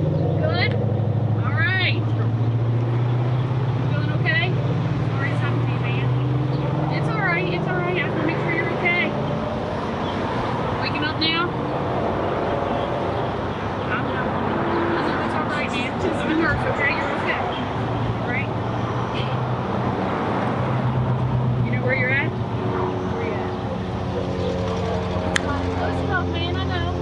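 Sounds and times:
vehicle engine idling: 0.0 - 27.0
indistinct voices: 10.0 - 27.0.

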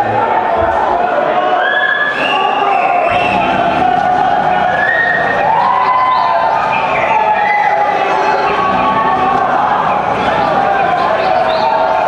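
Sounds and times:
crowd cheering and calling: 0.0 - 12.0
live music from speakers: 1.8 - 12.0.

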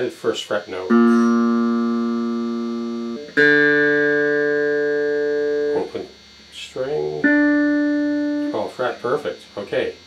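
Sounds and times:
electric guitar string plucked: 0.8 - 6.2, 6.9 - 9.1.

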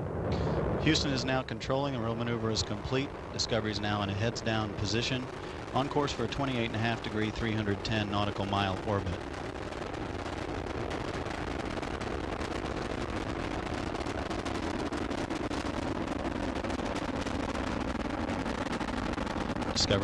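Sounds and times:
rocket launch roar: 0.0 - 20.0.

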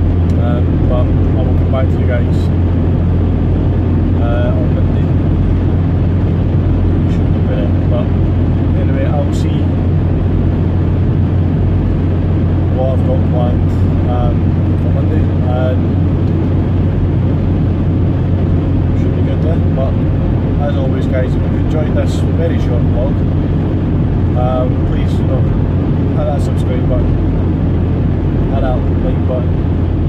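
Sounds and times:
van engine and tyres droning: 0.0 - 30.0.

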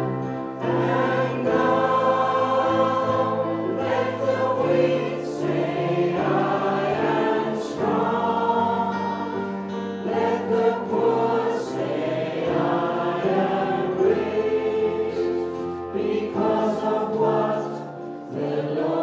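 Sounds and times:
acoustic guitar: 0.0 - 19.0
group singing worship song: 0.0 - 19.0
keyboard: 0.0 - 19.0.

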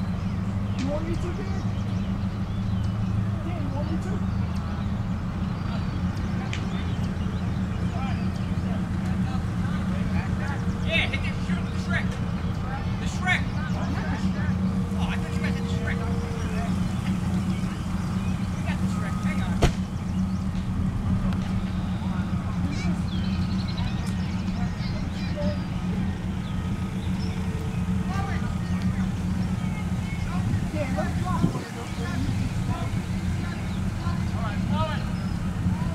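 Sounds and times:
tank engine idling: 0.0 - 35.9
sharp bang: 19.5 - 20.0.

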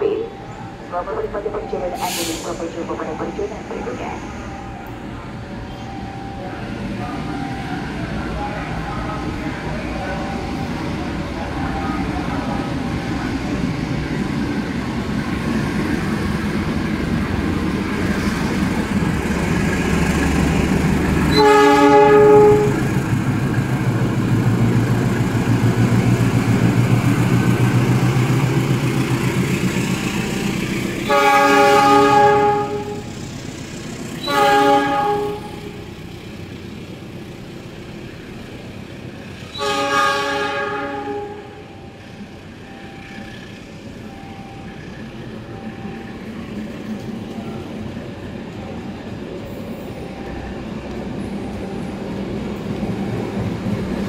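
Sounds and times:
passing train: 0.0 - 54.0
diesel engine rumble: 8.1 - 39.6
locomotive air horn: 21.3 - 22.9, 31.0 - 33.1, 34.2 - 35.9, 39.5 - 41.8.

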